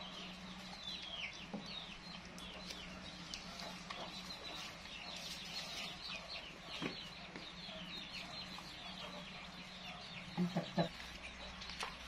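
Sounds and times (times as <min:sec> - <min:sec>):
chickens peeping and clucking: 0:00.0 - 0:12.0.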